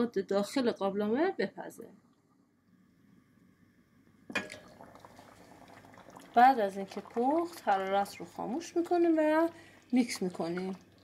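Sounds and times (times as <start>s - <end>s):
soup bubbling in a pot: 3.7s - 11.0s.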